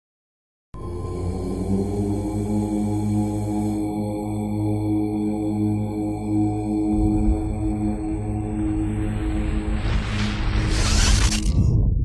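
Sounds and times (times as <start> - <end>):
deep voices chanting: 0.8 - 9.8
steady drone: 0.8 - 11.6.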